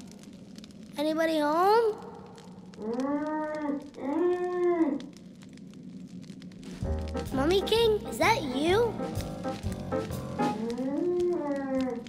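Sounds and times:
person moaning: 10.6s - 12.0s.

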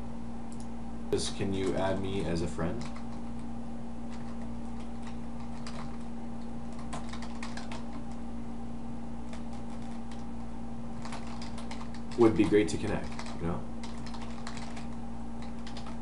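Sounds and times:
computer keyboard typing: 1.4s - 2.0s, 2.7s - 3.5s, 4.1s - 8.2s, 9.2s - 10.3s, 11.0s - 16.0s.

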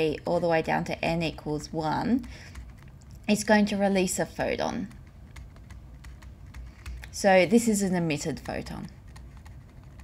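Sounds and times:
stylus tapping and scratching: 0.0s - 10.0s.

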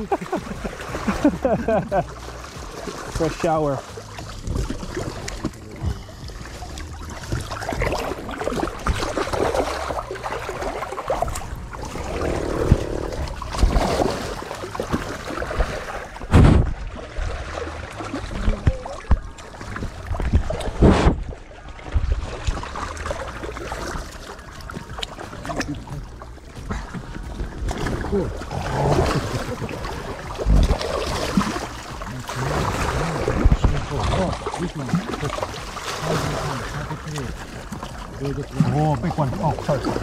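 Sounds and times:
water sloshing and splashing: 0.0s - 40.0s.

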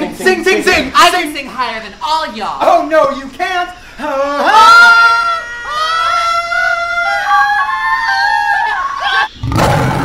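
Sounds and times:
harsh loud scream: 4.2s - 10.0s.

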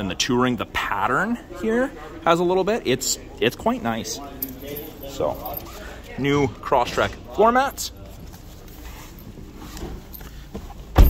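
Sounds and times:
rustling and handling noise: 4.4s - 5.9s, 7.7s - 11.0s.

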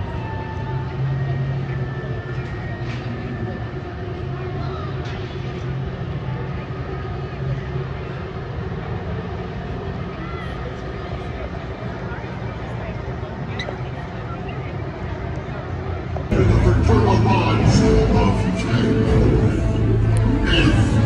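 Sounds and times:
faint voices: 0.0s - 21.0s
steady low rumble: 10.8s - 21.0s.

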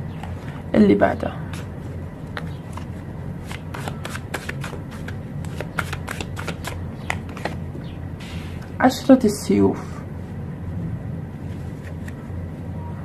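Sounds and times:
cards being shuffled: 1.5s - 7.7s, 11.5s - 12.3s.

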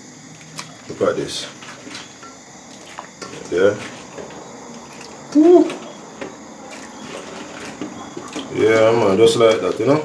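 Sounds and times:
water boiling in a pot: 0.0s - 10.0s
soft splashes: 0.2s - 10.0s.

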